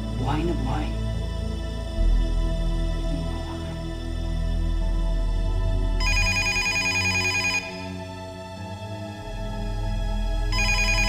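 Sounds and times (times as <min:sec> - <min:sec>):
soft background music: 0:00.0 - 0:11.0
telephone ringing trill: 0:06.0 - 0:08.0, 0:10.5 - 0:11.0.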